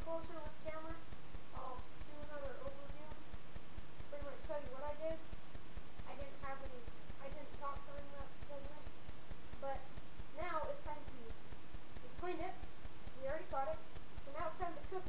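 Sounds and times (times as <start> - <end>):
boy speaking indistinctly: 0.0 - 3.3, 4.1 - 5.3, 6.0 - 9.0, 9.6 - 11.4, 12.0 - 15.0
rapid low ticking: 0.0 - 15.0.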